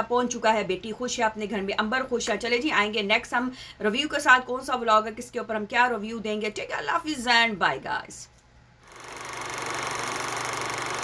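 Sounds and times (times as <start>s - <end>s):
mechanical whirring with fine rattle: 8.8s - 11.0s.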